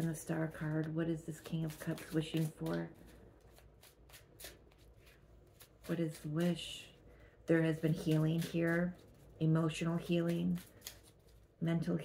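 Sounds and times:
cards being shuffled: 0.6s - 6.6s, 7.7s - 9.3s, 10.0s - 11.5s.

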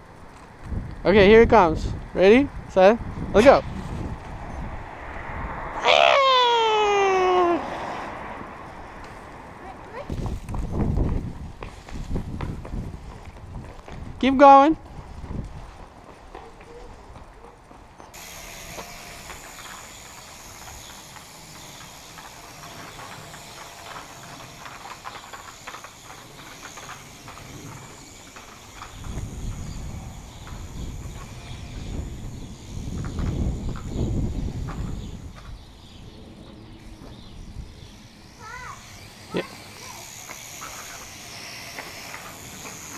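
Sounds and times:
wind buffeting microphone: 0.0s - 5.8s, 7.2s - 17.3s, 18.2s - 42.9s.

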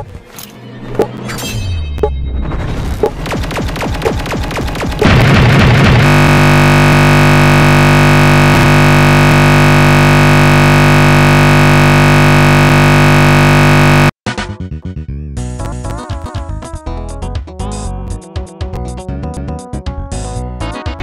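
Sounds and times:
video music: 3.0s - 14.6s
loud glitchy burst: 3.1s - 14.1s
loud buzzing drone: 5.0s - 14.2s.

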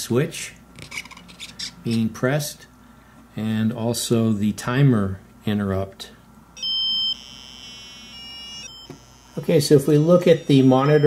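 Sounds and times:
buzzy electronic tone changing pitch: 6.6s - 11.0s.

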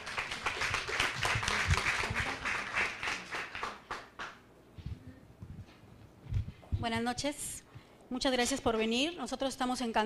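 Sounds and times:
audience applauding: 0.0s - 4.4s.

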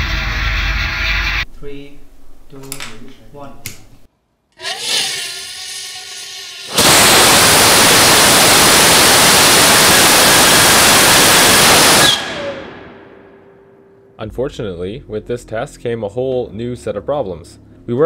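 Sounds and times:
rocket motor roaring: 4.6s - 13.0s
whistling hiss: 5.6s - 12.9s.

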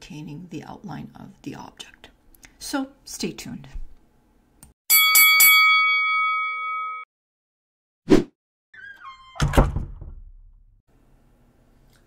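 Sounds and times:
brief chime tone: 4.9s - 7.1s.

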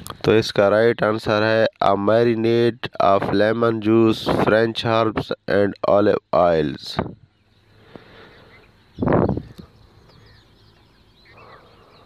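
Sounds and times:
birds chirping faintly: 0.0s - 12.0s.

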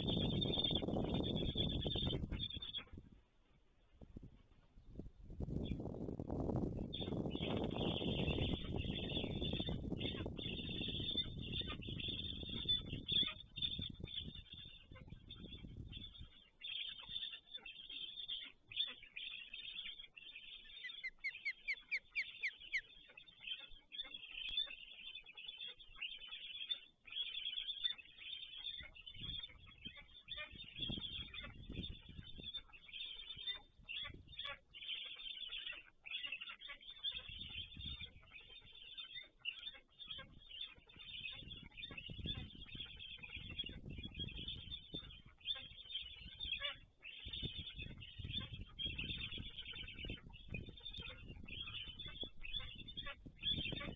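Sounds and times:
bird calling: 0.0s - 3.2s, 6.8s - 53.9s.

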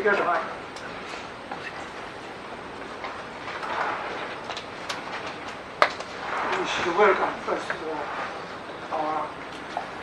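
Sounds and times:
people rustling and shuffling: 0.0s - 10.0s.

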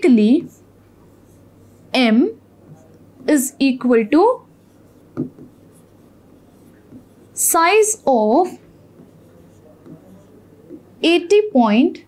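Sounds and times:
stylus scratching and tapping: 0.3s - 2.0s, 4.1s - 10.9s.

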